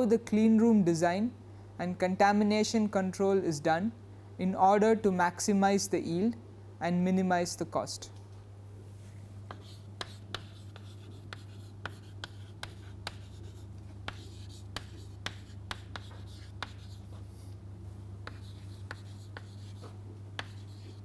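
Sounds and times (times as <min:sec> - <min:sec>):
steady low hum: 0:00.0 - 0:21.0
chalk tapping and scratching: 0:09.5 - 0:17.6, 0:18.2 - 0:21.0.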